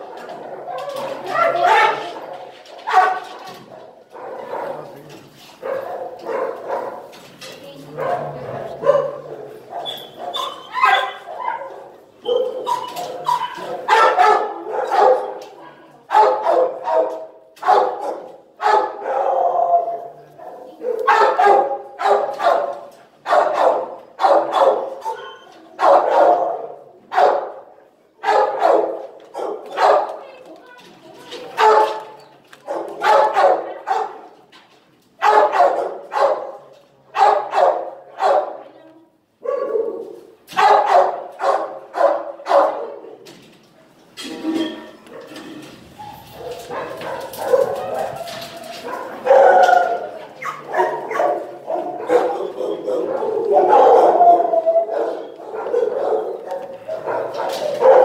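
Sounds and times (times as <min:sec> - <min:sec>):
dogs barking: 0:00.0 - 0:05.0, 0:05.6 - 0:07.2, 0:07.9 - 0:30.4, 0:31.5 - 0:34.3, 0:35.2 - 0:38.6, 0:39.4 - 0:43.2, 0:45.1 - 0:58.0.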